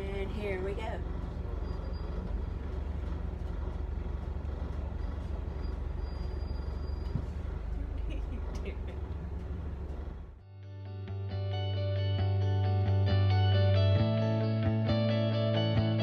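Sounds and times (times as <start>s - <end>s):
vehicle rumble: 0.0s - 10.4s.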